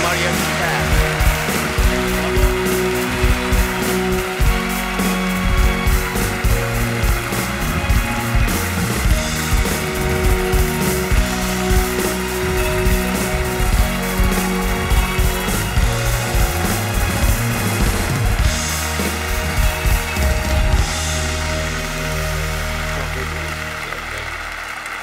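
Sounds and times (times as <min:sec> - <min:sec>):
audience applause: 0:00.0 - 0:25.0
band music with steady beat: 0:00.0 - 0:25.0.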